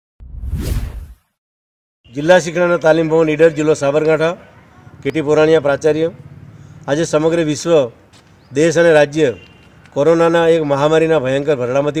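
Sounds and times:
whoosh sweep: 0.2 - 1.3.

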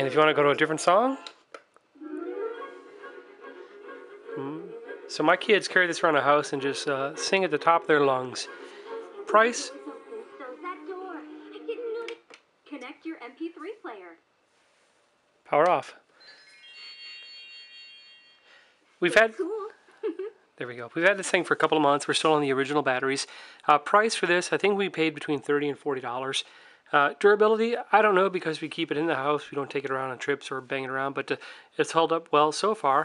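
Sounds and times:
toy electronic power-off chime: 16.2 - 18.5.

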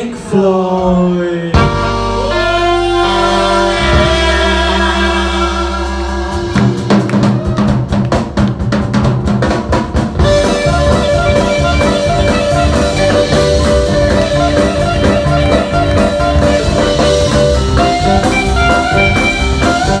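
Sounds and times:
drums: 0.0 - 20.0
electric guitar: 1.6 - 8.7, 10.0 - 20.0
bass balalaika: 1.6 - 20.0.

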